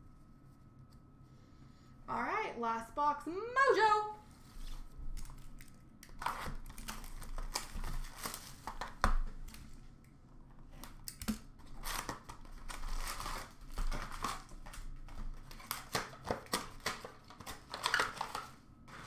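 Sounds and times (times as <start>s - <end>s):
foil packs crinkling: 5.1s - 9.7s, 10.8s - 19.0s
box tearing: 6.2s - 8.5s.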